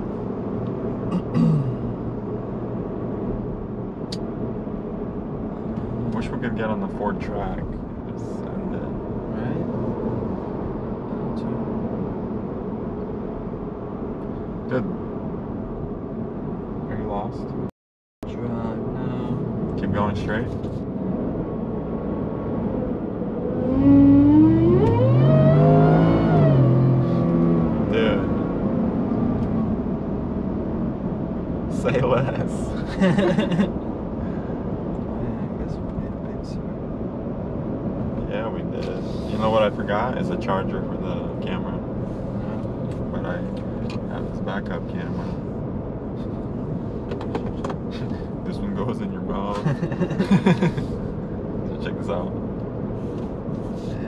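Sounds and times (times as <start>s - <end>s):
cab and road noise: 0.0s - 54.0s
truck engine accelerating: 18.3s - 54.0s.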